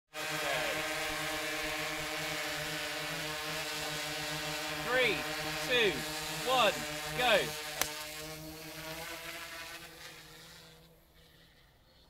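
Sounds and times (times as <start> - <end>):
drone propellers humming: 0.3 - 8.6.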